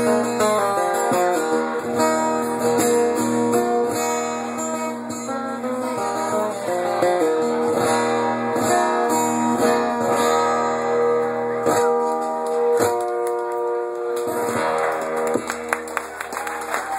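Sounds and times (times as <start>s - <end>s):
guitar strumming slow chords: 0.0s - 15.9s.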